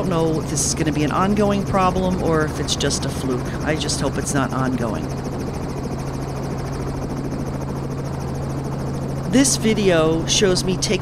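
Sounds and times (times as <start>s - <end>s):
helicopter engine and rotor drone: 0.0s - 11.0s.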